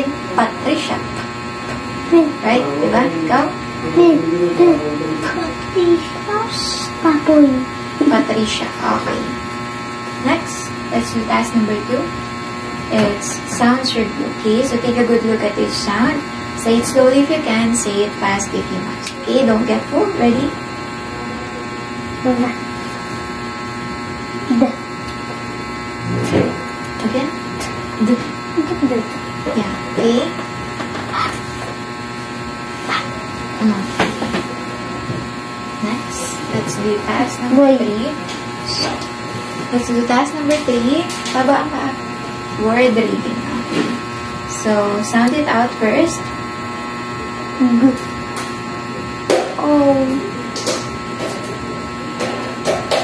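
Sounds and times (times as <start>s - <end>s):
electrical buzzing hum: 0.0s - 53.0s
person speaking a syllable: 2.2s - 6.5s, 26.0s - 27.3s.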